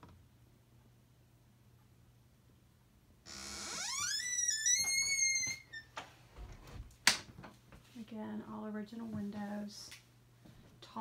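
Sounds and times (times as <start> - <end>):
high squeal rising in pitch: 3.3 - 5.9.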